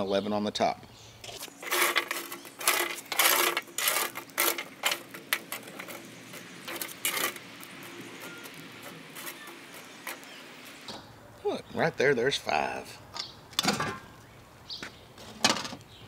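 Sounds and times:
charcoal briquettes clinking on metal: 0:01.2 - 0:11.0.

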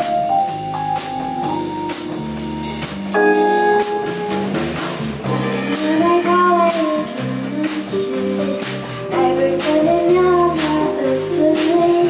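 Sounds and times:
drum kit with cymbal hits: 0:00.0 - 0:12.0
electric bass: 0:00.0 - 0:12.0
keyboard: 0:00.0 - 0:12.0
woman singing: 0:05.4 - 0:12.0.

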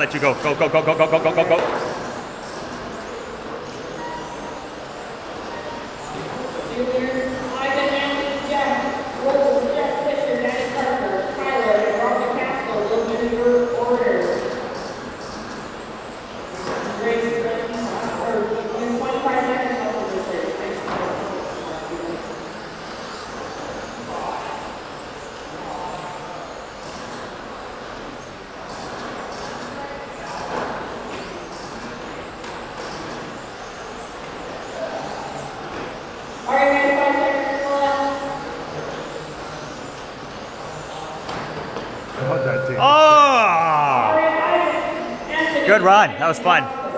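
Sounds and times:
bursts of voices: 0:42.2 - 0:46.8.

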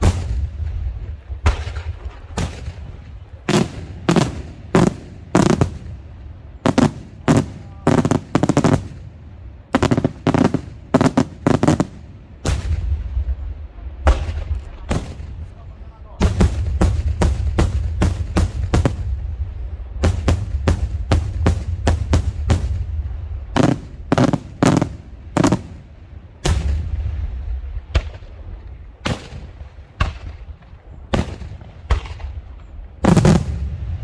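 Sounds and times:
low rumble: 0:12.1 - 0:34.0.

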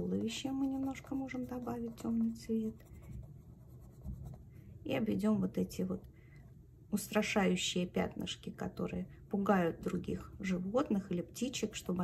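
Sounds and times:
pencil scratching on paper: 0:00.0 - 0:04.5.

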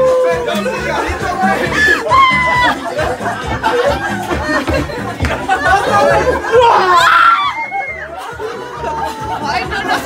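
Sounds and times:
people talking and calling out: 0:00.0 - 0:10.0
dance music with bass beat: 0:00.4 - 0:06.6.

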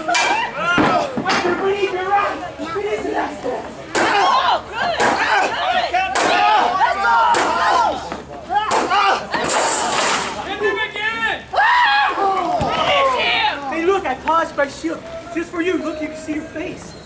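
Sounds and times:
crowd voices: 0:00.0 - 0:17.0
fighters shouting: 0:03.9 - 0:09.4.

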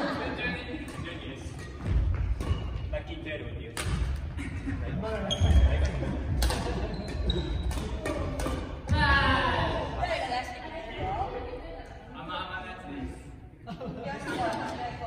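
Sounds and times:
rackets hitting shuttlecocks: 0:03.7 - 0:04.3, 0:06.0 - 0:09.8.

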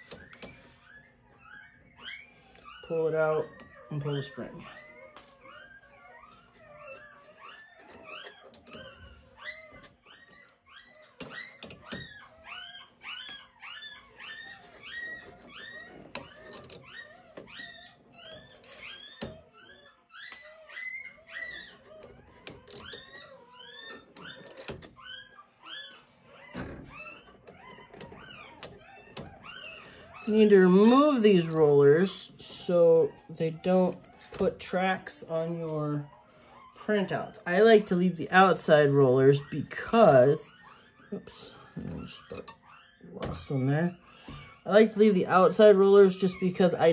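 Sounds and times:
puppies squeaking and whimpering: 0:00.0 - 0:46.9.

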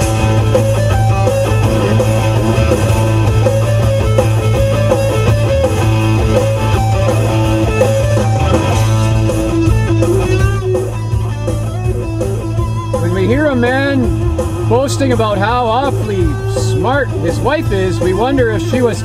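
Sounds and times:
bass line: 0:00.0 - 0:19.0
electric guitar melody: 0:00.0 - 0:19.0
rock music on car stereo: 0:00.0 - 0:19.0.

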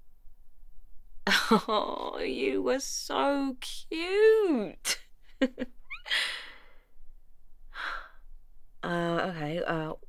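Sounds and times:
woman sighing: 0:06.0 - 0:06.8.

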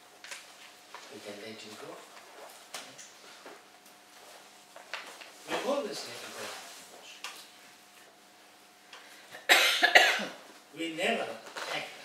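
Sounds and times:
person coughing: 0:09.4 - 0:10.4.

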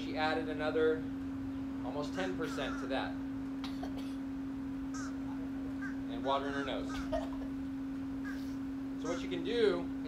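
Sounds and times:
steady low-pitched hum: 0:00.0 - 0:10.0.

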